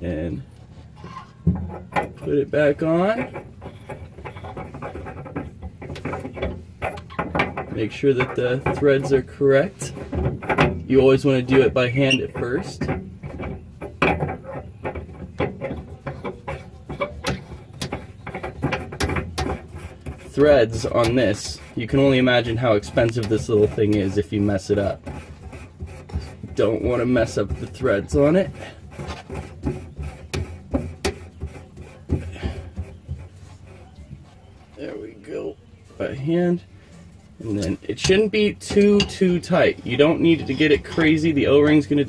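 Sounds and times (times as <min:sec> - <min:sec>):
metal clicks and scrapes: 0:00.4 - 0:34.8, 0:36.0 - 0:42.0.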